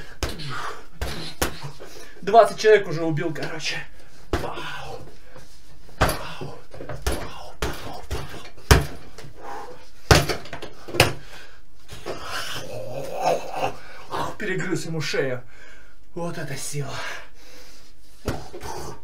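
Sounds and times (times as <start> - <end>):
punches hitting a punching bag: 6.0 - 9.0, 10.1 - 10.5.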